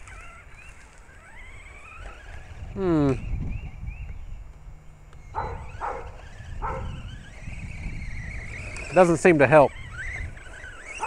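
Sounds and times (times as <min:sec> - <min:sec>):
electric motor whine: 0:00.0 - 0:11.0
dog barking: 0:05.4 - 0:07.0.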